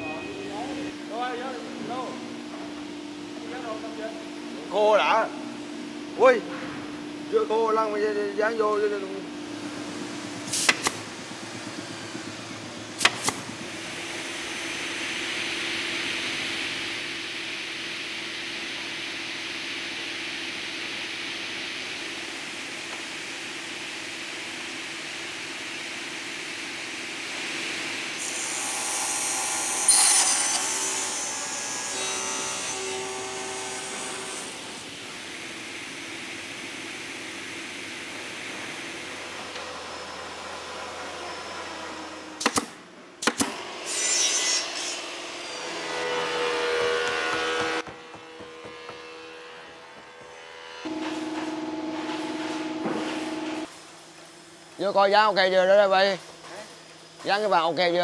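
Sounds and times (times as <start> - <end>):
workshop noise: 8.6 - 16.5, 27.2 - 35.4, 38.4 - 55.3
table saw cutting wood: 27.5 - 35.0, 38.8 - 42.7, 43.3 - 53.7.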